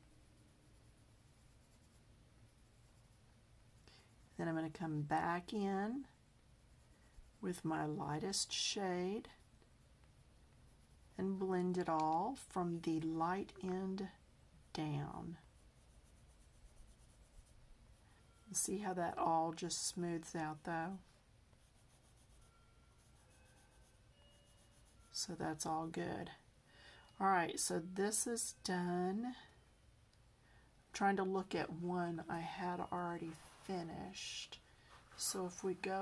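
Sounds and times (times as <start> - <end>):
pencil scratching on paper: 0.0 - 9.6, 10.2 - 25.6
low room hum: 0.0 - 36.0.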